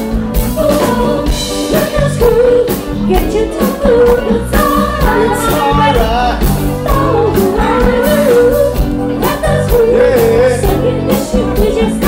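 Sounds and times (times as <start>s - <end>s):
live funk band playing: 0.0s - 12.0s.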